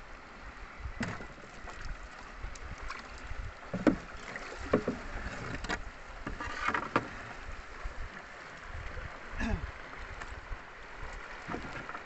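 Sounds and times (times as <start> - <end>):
water rushing: 0.0 - 12.0
wind: 0.0 - 12.0
paddle splashing in water: 0.4 - 12.0.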